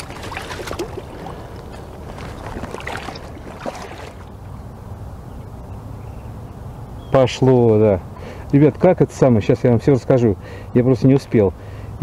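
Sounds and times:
water sloshing: 0.0s - 4.6s.

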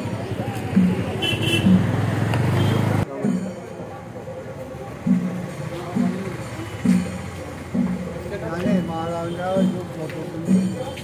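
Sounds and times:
people's voices: 0.0s - 11.0s
low repeating beat: 3.2s - 11.0s.

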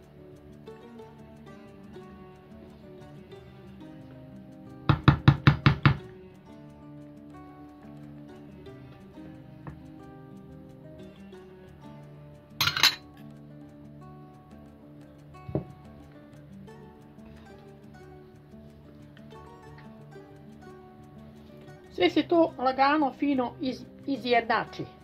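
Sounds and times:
background music: 0.0s - 25.0s
spoon knocking glass bowl: 12.6s - 13.0s.

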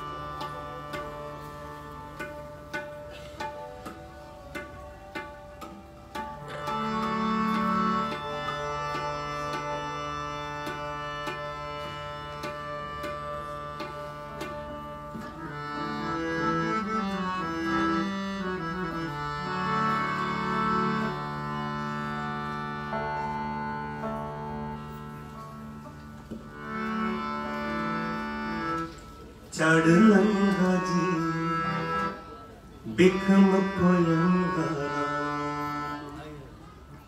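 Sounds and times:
tabla rhythm: 0.0s - 36.2s
harmonium drone and melody: 0.0s - 37.0s
plucked lute: 0.0s - 37.0s.

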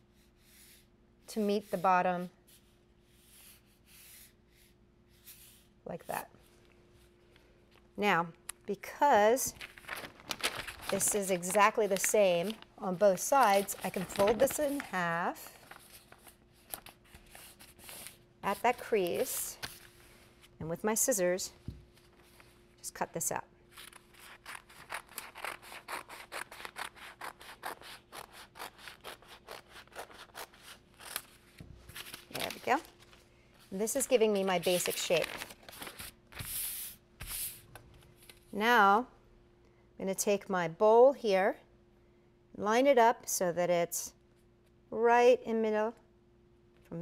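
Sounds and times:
stiff paper rustling: 9.6s - 20.0s, 33.9s - 37.6s.

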